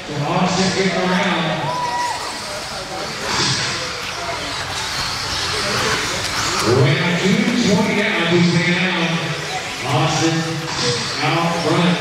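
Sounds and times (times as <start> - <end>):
echoing hall noise: 0.0 - 12.0
rc car motor and tyre whir: 0.7 - 12.0.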